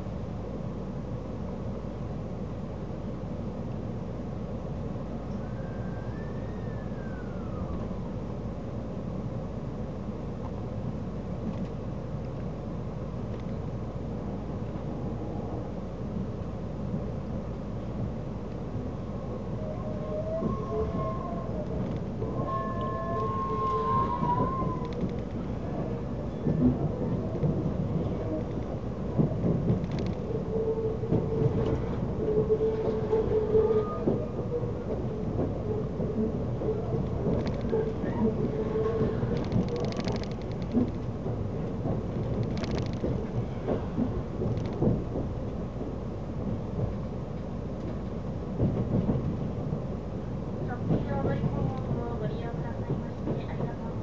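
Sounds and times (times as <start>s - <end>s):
train running gear rumbling: 0.0s - 54.0s.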